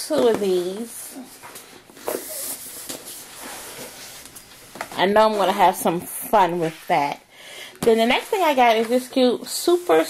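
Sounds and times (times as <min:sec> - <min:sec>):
cardboard rustling: 0:00.1 - 0:07.1.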